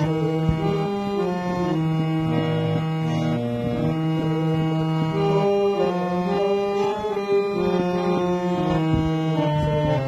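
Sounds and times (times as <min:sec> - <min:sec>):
harmonium sustained notes: 0:00.0 - 0:10.0.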